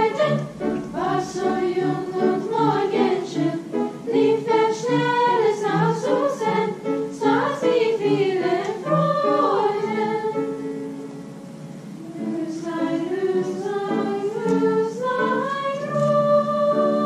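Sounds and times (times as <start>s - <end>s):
children's choir singing: 0.0s - 11.2s, 12.0s - 17.0s.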